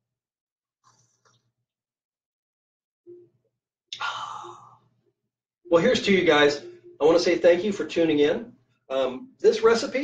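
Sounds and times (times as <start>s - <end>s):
man sighing: 4.0s - 4.8s.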